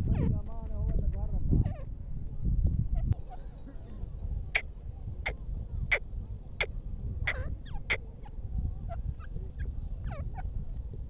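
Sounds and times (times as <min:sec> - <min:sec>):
bird chirping calls: 0:02.9 - 0:10.6.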